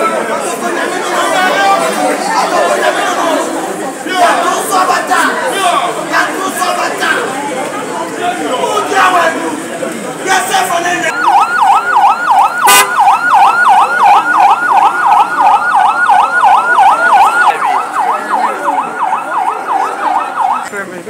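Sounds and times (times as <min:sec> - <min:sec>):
electronic siren yelping: 0:11.1 - 0:20.7.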